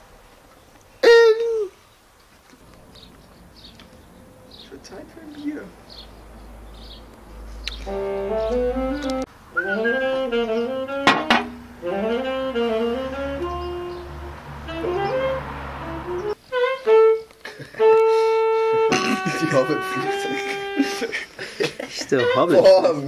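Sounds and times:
saxophone playing: 0:07.8 - 0:21.2, 0:22.1 - 0:23.0.

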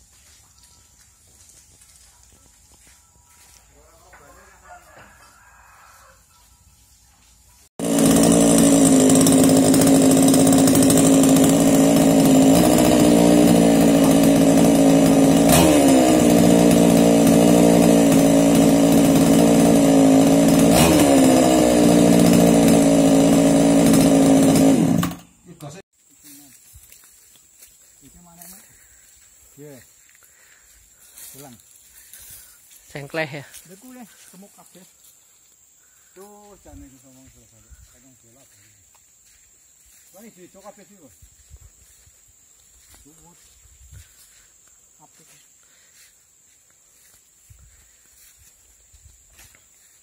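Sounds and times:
chainsaw engine running: 0:07.6 - 0:50.0.

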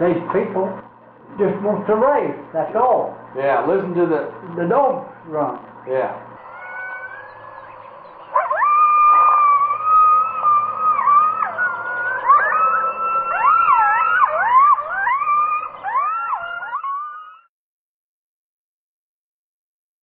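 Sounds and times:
hounds baying: 0:06.2 - 0:17.5.

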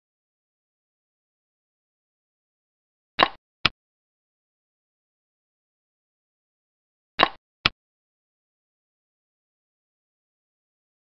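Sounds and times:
game piece clicks: 0:03.2 - 0:03.4, 0:07.2 - 0:07.4.

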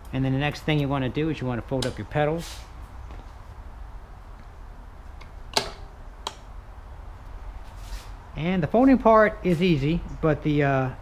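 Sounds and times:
bike pedal folding clicks: 0:05.2 - 0:06.5.

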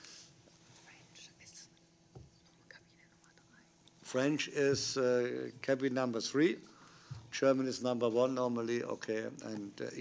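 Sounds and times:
faint whispering: 0:00.7 - 0:03.8.

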